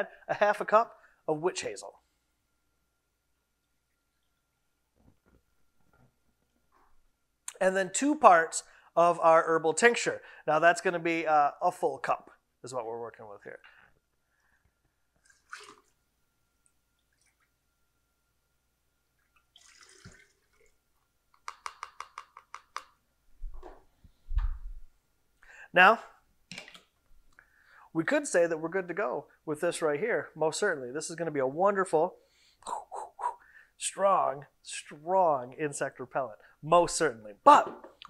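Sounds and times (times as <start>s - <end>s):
liquid trickling: 15.2s - 16.0s, 19.2s - 20.8s.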